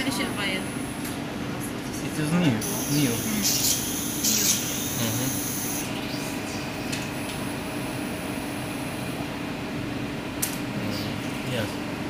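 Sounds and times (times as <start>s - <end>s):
laboratory machinery humming: 0.0s - 12.0s.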